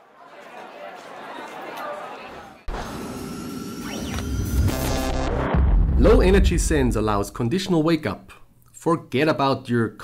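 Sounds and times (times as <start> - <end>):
synthesized pitch sweep: 2.7 - 7.1.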